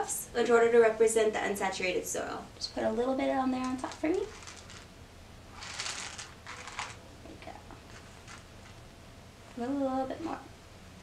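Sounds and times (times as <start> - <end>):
cereal clattering into plastic cup: 3.6 - 4.9, 5.6 - 7.0, 7.8 - 8.8.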